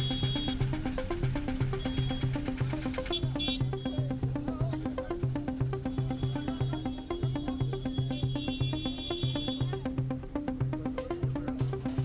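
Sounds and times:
electronic music with bass pattern: 0:00.0 - 0:12.0.

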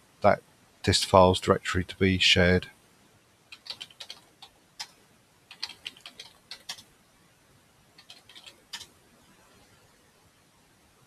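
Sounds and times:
computer keyboard typing: 0:03.5 - 0:04.9, 0:05.5 - 0:06.8, 0:08.0 - 0:08.9.

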